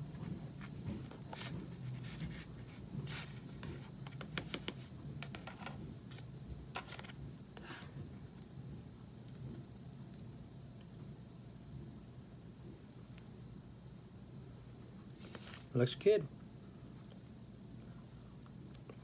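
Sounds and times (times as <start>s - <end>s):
steady low hum: 0.0s - 19.0s
plastic knife scraping and tapping: 3.6s - 5.8s.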